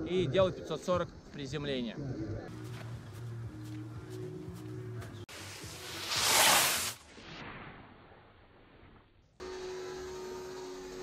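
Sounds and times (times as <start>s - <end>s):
background music with low notes: 0.0s - 6.4s
skis scraping over snow: 5.1s - 7.4s.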